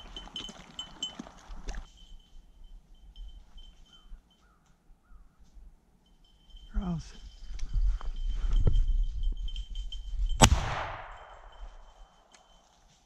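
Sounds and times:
shotgun shot with echo: 10.4 - 11.4.

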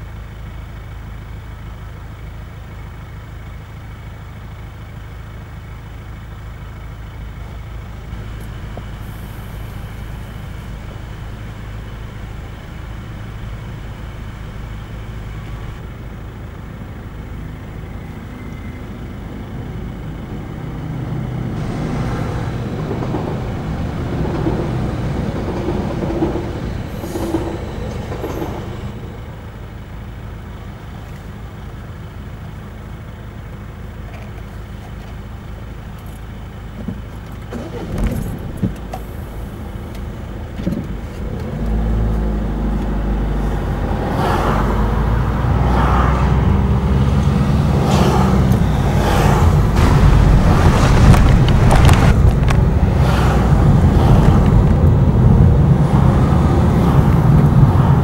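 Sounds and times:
car engines idling: 0.0 - 58.0
deep engine rumble of car driving: 0.0 - 58.0.

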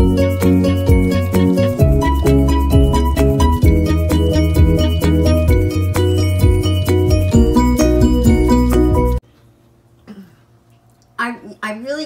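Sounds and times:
woman talking: 11.2 - 12.0.

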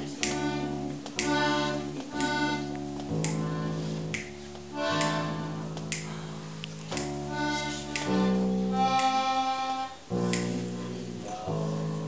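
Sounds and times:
accordion playing held chords: 0.0 - 11.5.

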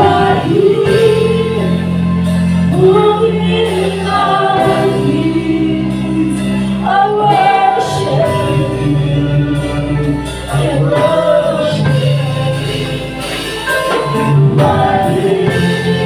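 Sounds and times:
group singing worship song: 0.0 - 16.0
held bass notes: 0.0 - 16.0.

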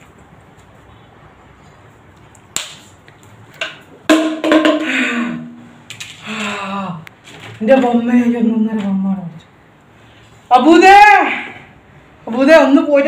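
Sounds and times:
person speaking loudly: 10.5 - 11.6.

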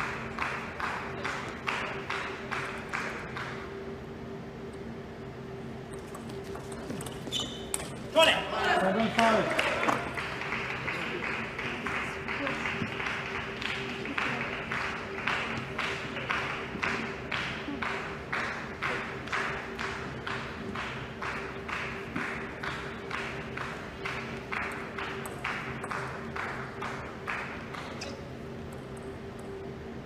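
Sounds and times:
spectators clapping in unison: 0.0 - 3.8, 8.2 - 28.0
faint steady hum: 0.0 - 30.0.

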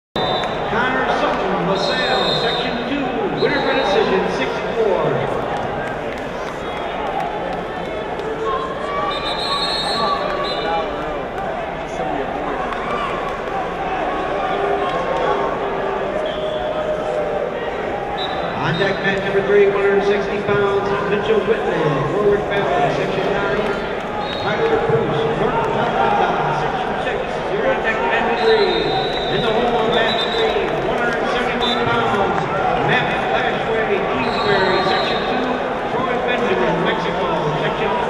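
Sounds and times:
crowd talking and shouting: 0.2 - 38.0.

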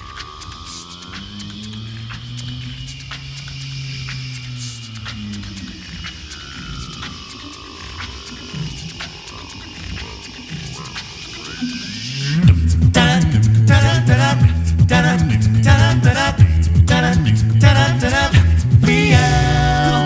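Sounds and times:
mouth-percussion clicks: 0.0 - 20.0
vocal group singing: 9.6 - 20.0.

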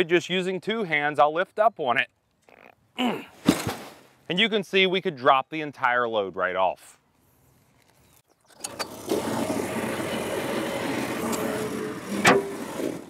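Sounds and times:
small gas engine running: 8.5 - 13.0
sharp clunk: 12.2 - 12.5.

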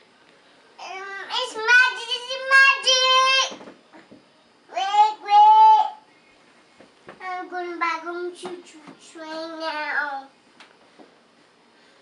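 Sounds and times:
young child singing: 7.2 - 10.3.

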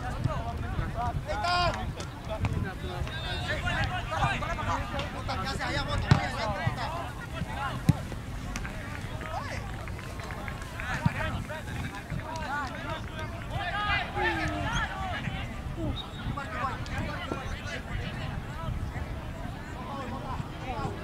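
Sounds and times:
distant players shouting: 2.9 - 18.2.

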